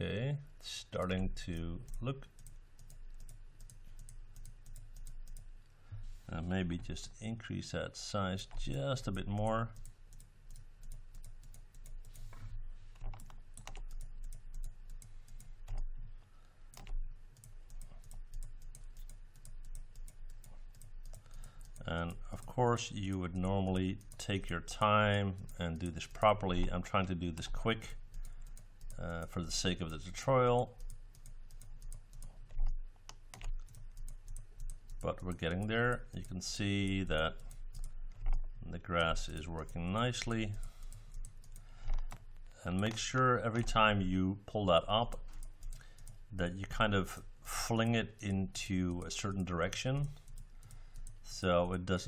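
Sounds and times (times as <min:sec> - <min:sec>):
low steady hum: 0:00.0 - 0:52.0
computer mouse clicks: 0:01.9 - 0:05.5, 0:09.8 - 0:15.9, 0:16.7 - 0:22.5, 0:30.8 - 0:36.4, 0:37.4 - 0:38.5, 0:39.6 - 0:43.0, 0:45.1 - 0:46.2, 0:50.0 - 0:51.2.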